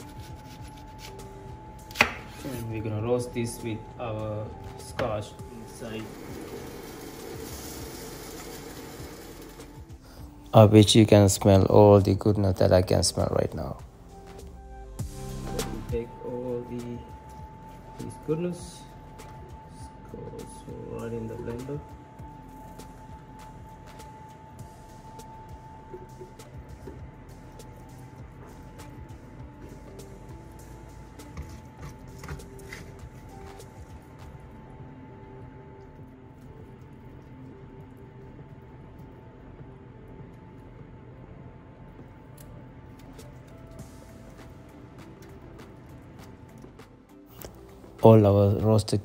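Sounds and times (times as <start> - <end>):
quiet background music: 0.0 - 49.0.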